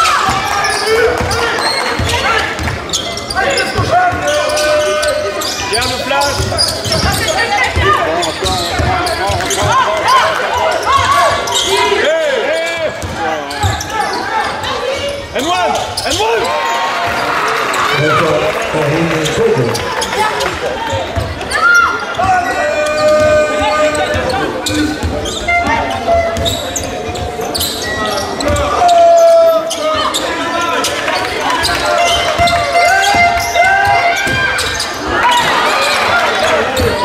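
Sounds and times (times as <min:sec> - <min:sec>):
shoe squeaks: 0:00.0 - 0:16.8, 0:19.2 - 0:37.0
voices calling out: 0:00.0 - 0:37.0.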